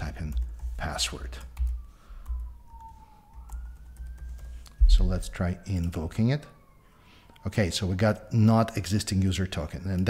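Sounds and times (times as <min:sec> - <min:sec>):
person speaking: 0:00.0 - 0:01.6
keyboard keystrokes: 0:00.0 - 0:04.8
low thump: 0:04.8 - 0:05.2
low rumble: 0:04.8 - 0:05.3.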